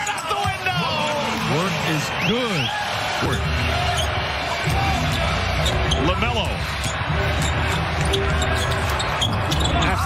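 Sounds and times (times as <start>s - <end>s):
arena music: 0.1s - 10.0s.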